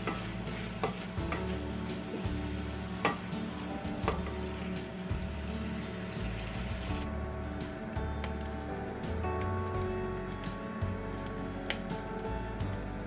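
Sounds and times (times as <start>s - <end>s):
spatula scraping and knocking pan: 0.0s - 4.6s
food sizzling in a pan: 0.0s - 7.1s
background music: 0.0s - 13.0s.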